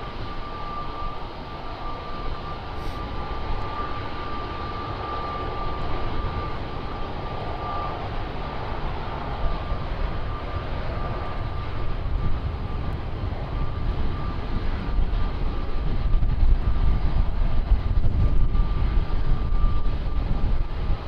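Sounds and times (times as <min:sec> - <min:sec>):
jet engines at takeoff power: 0:00.0 - 0:21.0.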